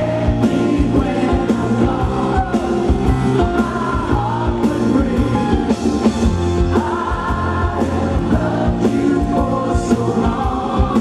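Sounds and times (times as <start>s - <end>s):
bass: 0.0s - 11.0s
electric guitar: 0.0s - 11.0s
keyboards: 0.0s - 11.0s
lead vocal: 0.0s - 11.0s
steady drum beat: 0.0s - 11.0s.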